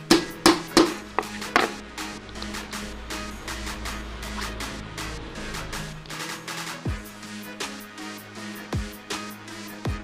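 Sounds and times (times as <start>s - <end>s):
electronic background music: 0.0s - 10.0s
hammer striking metal rivet: 0.1s - 1.8s.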